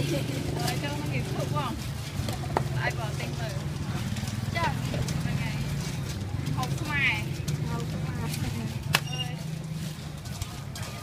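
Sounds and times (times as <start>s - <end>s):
people talking: 0.0s - 1.8s, 4.5s - 5.8s, 6.5s - 9.4s.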